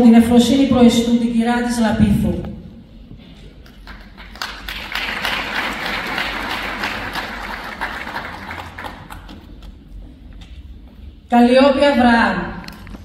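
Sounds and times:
audience applauding: 3.8s - 9.5s.

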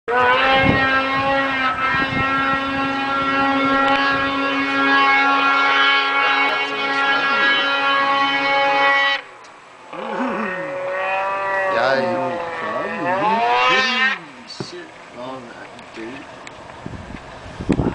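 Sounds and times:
snowmobile engine at high revs: 0.1s - 9.2s, 9.9s - 14.8s.

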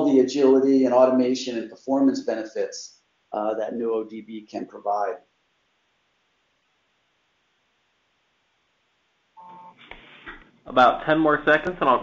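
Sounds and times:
faint line noise: 0.0s - 12.0s.

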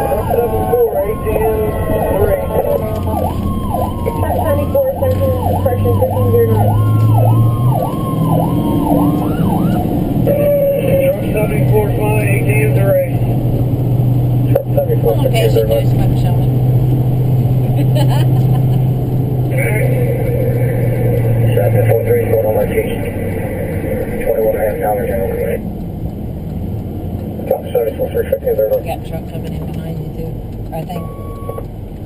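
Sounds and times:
siren yelping: 0.0s - 12.8s, 30.9s - 31.6s
engine and road noise: 0.0s - 32.0s.

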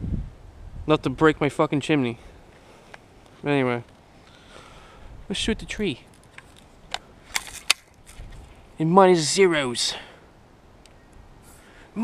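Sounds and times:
gun mechanical clicks: 6.1s - 8.4s.

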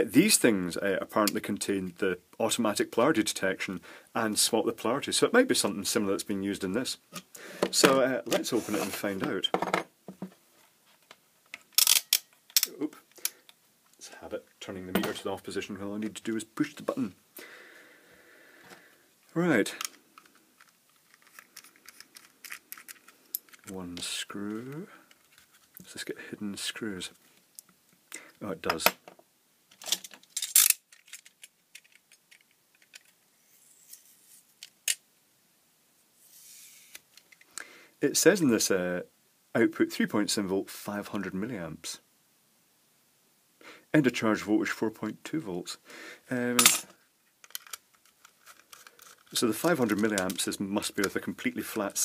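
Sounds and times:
multimeter and leads clattering: 46.6s - 51.2s.

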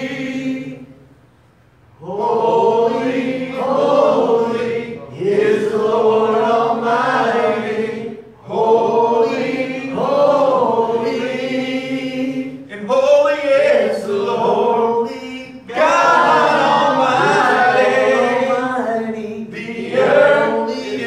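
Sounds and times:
voices singing slow chorus: 0.0s - 21.0s.

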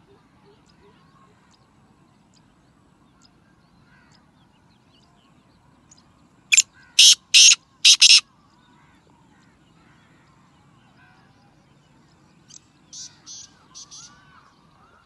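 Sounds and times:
bird calling hoarse notes: 6.5s - 8.2s.

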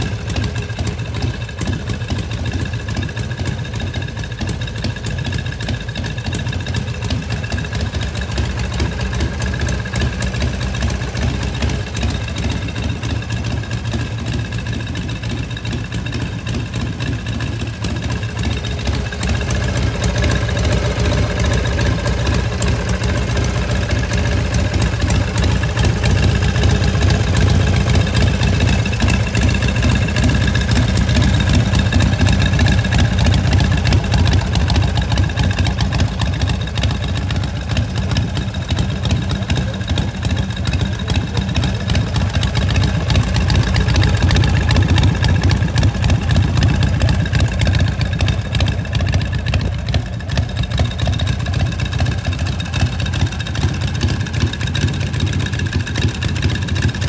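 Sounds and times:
motorcycle idling: 0.0s - 57.0s.

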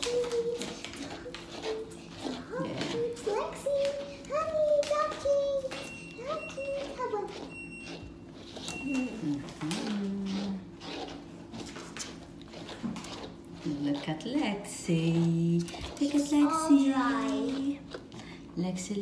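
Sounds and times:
washing machine electronic beep: 5.8s - 9.4s.

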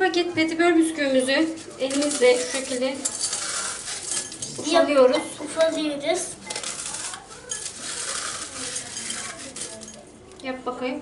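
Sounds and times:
biscuits crunching and crackling: 1.4s - 4.6s, 6.1s - 10.1s
pieces clicking against glass: 6.5s - 10.0s.

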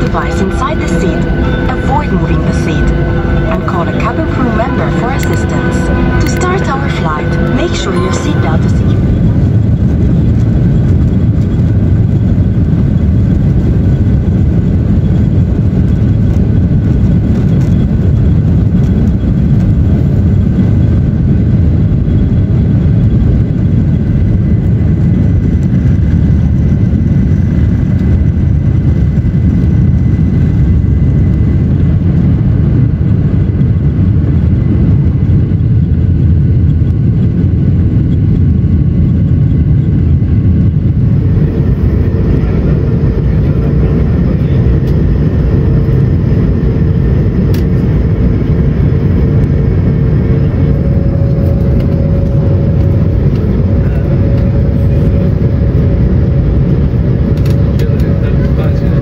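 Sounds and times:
faint high whine: 0.0s - 14.1s, 16.0s - 59.0s
deep jet engine rumble: 0.0s - 59.0s.

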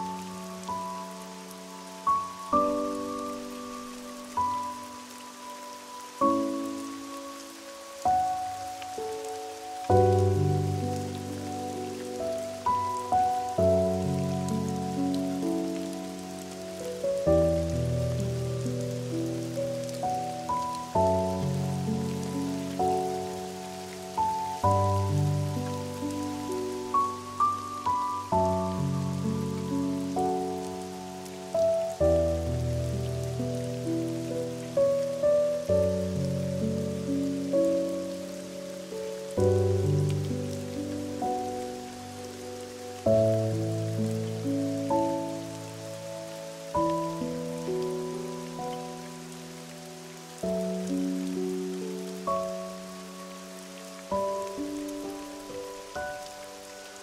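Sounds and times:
rain hissing: 0.0s - 57.0s
slow soft piano music: 0.0s - 57.0s.

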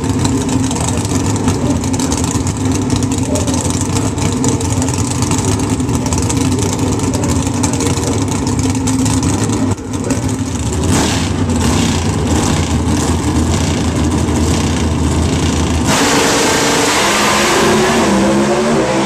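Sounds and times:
loud car engine idling: 0.0s - 19.0s.

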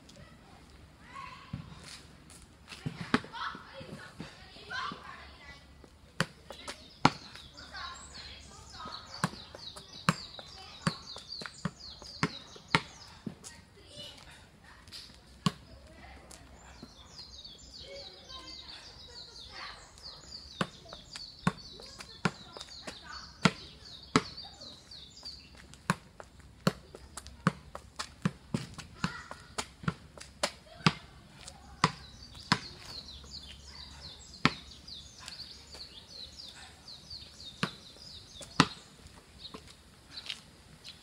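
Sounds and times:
birds chirping: 2.8s - 41.0s.

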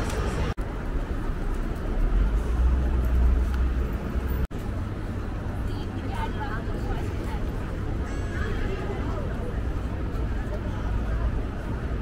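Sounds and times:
murmur of passers-by: 0.0s - 12.0s.

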